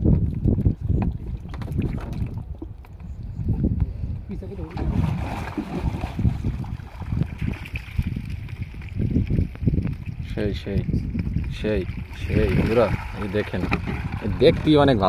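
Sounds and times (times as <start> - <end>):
wind rumbling on microphone: 0.0 - 15.0
water sloshing and splashing: 0.8 - 3.3, 4.5 - 10.3, 10.9 - 15.0.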